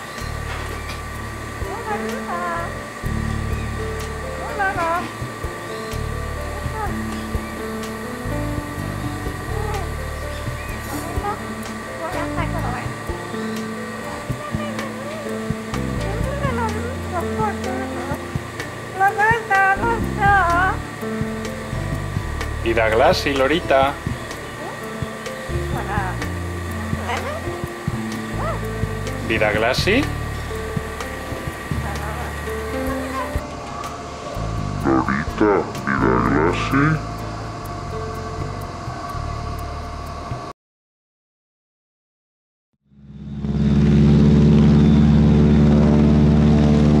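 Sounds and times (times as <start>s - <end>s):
background music with low chords: 0.0s - 40.5s, 44.2s - 47.0s
low drone of held tones: 0.0s - 40.5s, 42.9s - 47.0s.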